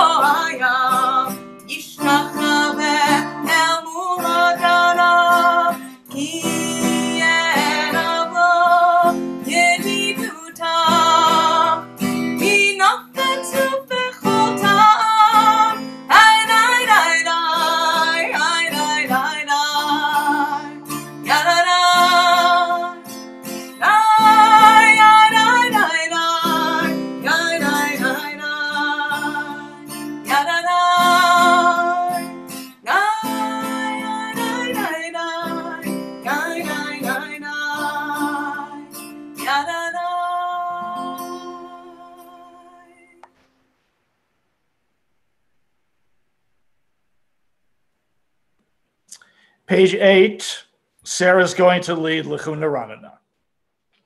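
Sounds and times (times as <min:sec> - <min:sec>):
woman singing: 0:00.0 - 0:43.3
acoustic guitar strumming: 0:00.0 - 0:43.5.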